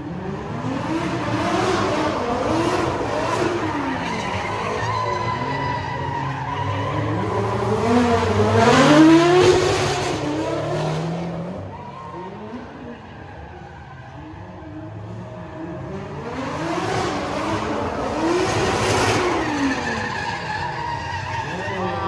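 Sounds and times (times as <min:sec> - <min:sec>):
car engines revving: 0:00.0 - 0:22.0
tyres screeching: 0:03.4 - 0:09.0, 0:18.1 - 0:22.0.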